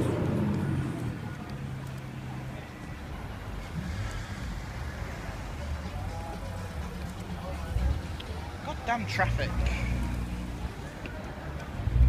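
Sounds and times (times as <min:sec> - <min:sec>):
slow traffic engine rumble: 0:00.0 - 0:12.0.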